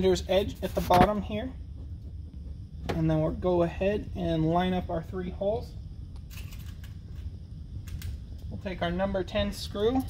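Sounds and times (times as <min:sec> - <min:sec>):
low workshop hum: 0:00.0 - 0:10.0.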